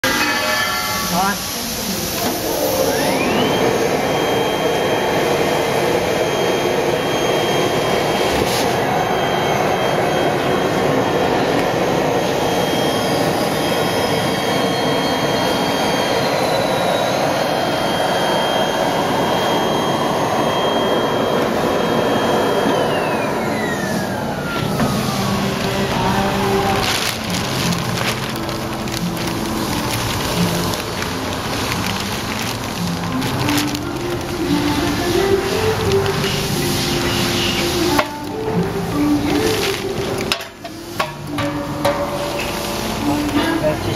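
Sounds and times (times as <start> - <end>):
vacuum conveyor motor whine: 0.0 - 43.9
powder rushing through hose: 23.5 - 38.1.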